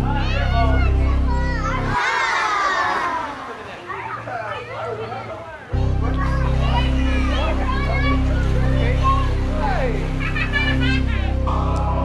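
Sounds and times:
voices: 0.0s - 12.0s
music with heavy bass: 5.8s - 12.0s.

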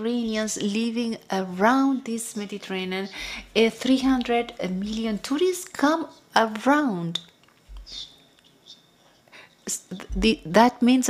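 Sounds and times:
soft breath noises: 3.1s - 3.6s.

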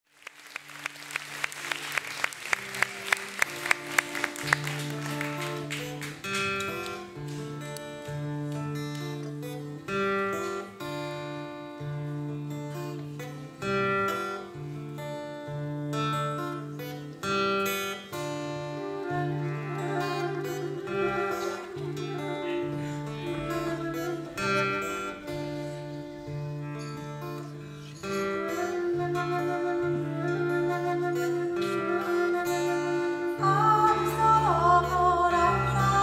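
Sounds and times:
plucked string notes: 3.5s - 36.0s
low held instrument notes: 18.5s - 36.0s.

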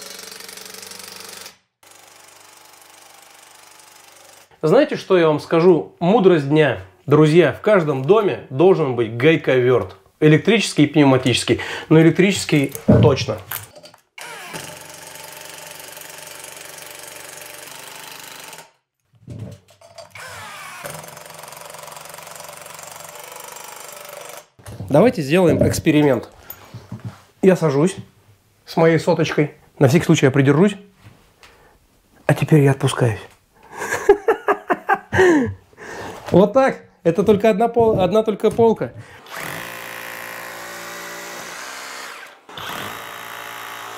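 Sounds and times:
man laughing breathlessly: 33.6s - 36.2s.

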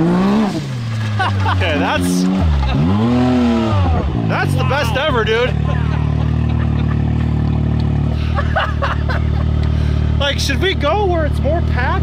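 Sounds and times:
engine idling: 1.0s - 12.0s
man laughing: 1.2s - 3.2s, 4.5s - 10.0s.

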